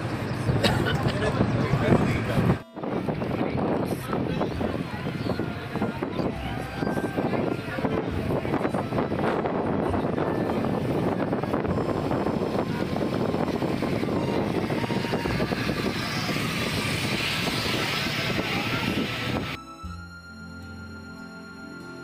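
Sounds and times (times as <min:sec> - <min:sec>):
wind buffeting microphone: 0:00.0 - 0:19.6
soft background music: 0:02.6 - 0:16.6, 0:19.6 - 0:22.0
boat engine: 0:03.8 - 0:22.0.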